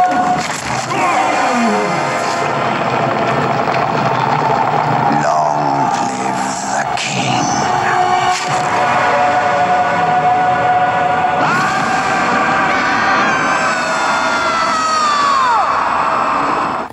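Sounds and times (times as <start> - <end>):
dramatic orchestral score: 0.0 - 16.9
stampede din: 0.0 - 16.9
cartoon lion screaming: 0.9 - 2.3.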